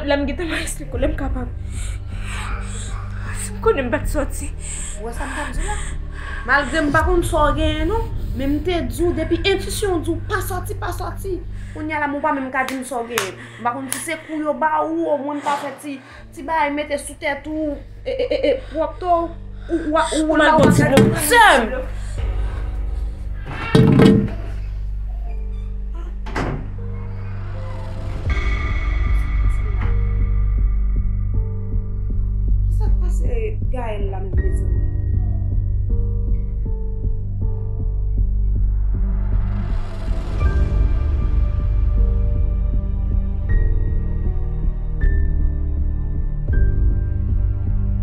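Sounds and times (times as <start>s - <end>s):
low background music: 0.0s - 48.0s
woman gasping and breathing hard: 1.6s - 3.6s
person speaking: 18.5s - 22.0s
heavy wooden door thudding: 20.5s - 21.6s, 23.5s - 24.6s, 26.2s - 26.8s.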